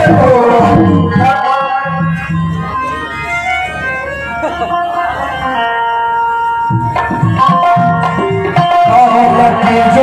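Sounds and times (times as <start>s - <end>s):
harmonium playing: 0.0s - 10.0s.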